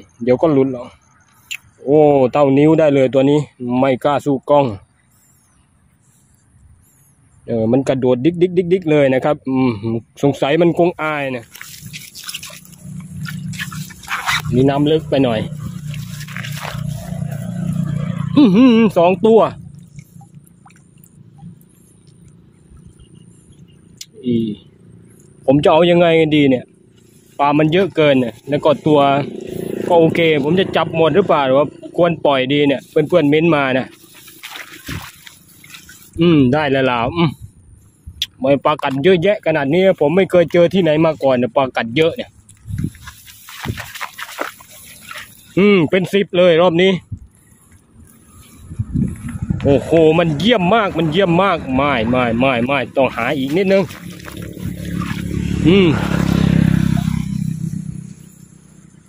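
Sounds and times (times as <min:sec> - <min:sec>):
plastic basket scraping wet grass: 0:11.2 - 0:18.0, 0:32.8 - 0:36.2, 0:42.6 - 0:45.6, 0:52.1 - 0:56.6
steady low rumble: 0:47.0 - 0:58.4.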